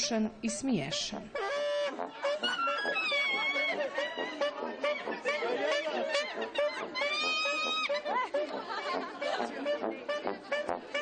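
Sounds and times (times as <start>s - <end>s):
voices chattering quickly: 1.6s - 11.0s.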